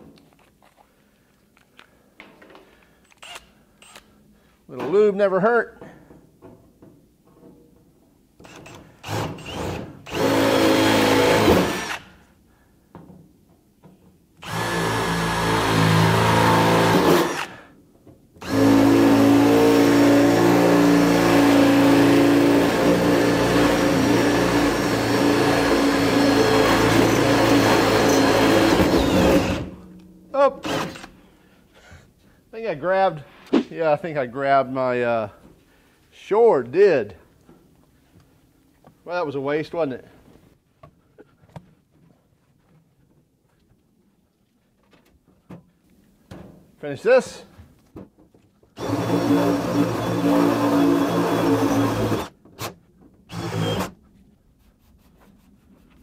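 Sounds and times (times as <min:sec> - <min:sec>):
cordless drill motor whine: 0:14.4 - 0:17.6, 0:48.8 - 0:52.3, 0:53.3 - 0:53.9
drill bit grinding metal: 0:18.4 - 0:29.7, 0:48.8 - 0:52.3, 0:53.3 - 0:53.9.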